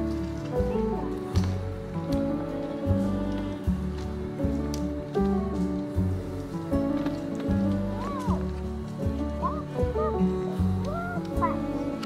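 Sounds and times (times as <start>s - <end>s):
calm instrumental music: 0.0s - 12.0s.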